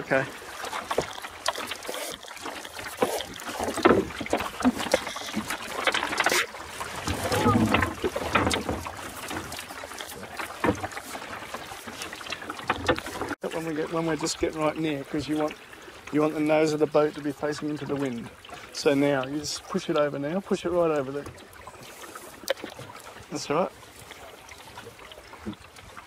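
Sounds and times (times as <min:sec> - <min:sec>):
boat gear knocking and rustling: 0:00.0 - 0:15.5
water slapping against hull: 0:00.0 - 0:26.0.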